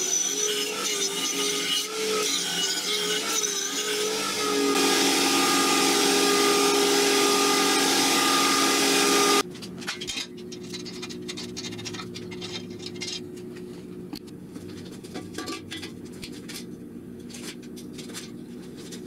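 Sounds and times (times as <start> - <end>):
belt grinder grinding steel: 0.0 - 9.4.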